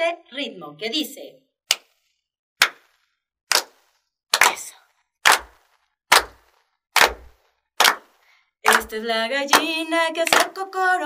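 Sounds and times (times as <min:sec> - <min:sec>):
hand claps in slow beat: 0:02.6 - 0:04.6, 0:05.3 - 0:08.9, 0:09.5 - 0:10.6.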